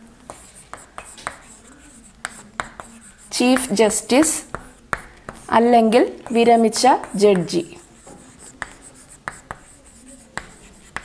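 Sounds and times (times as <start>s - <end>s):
chalk tapping on blackboard: 0.2s - 11.0s
chalk scraping: 0.3s - 5.6s, 6.2s - 11.0s.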